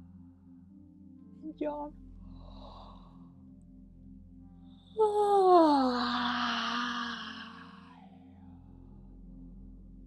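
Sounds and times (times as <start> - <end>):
woman sighing: 5.0 - 7.6.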